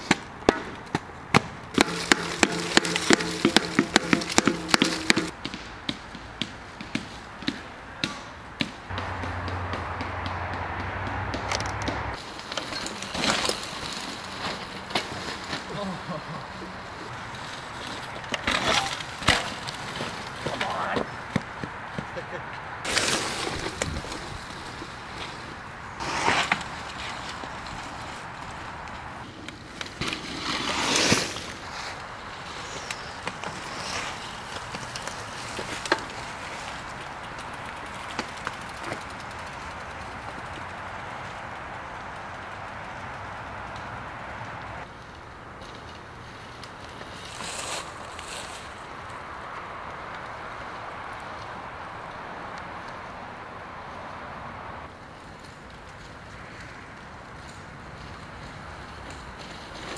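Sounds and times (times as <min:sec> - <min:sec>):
steady outdoor hiss: 0:00.0 - 0:59.9
bike tyres skidding on leaves: 0:01.4 - 0:07.6, 0:08.8 - 0:59.9.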